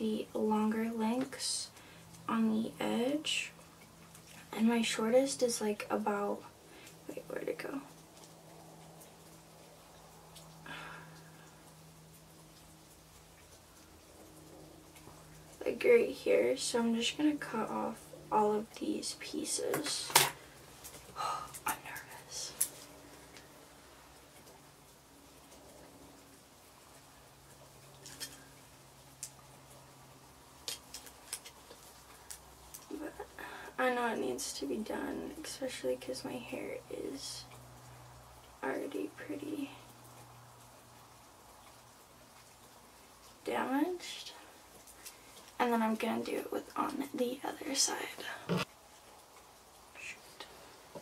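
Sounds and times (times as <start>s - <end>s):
low electrical hum: 0.0s - 51.0s
soft rustle: 0.9s - 35.6s.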